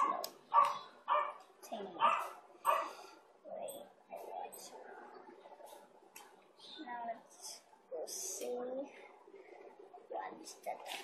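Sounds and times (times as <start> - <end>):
dog barking: 0.0 - 1.4, 2.0 - 3.0.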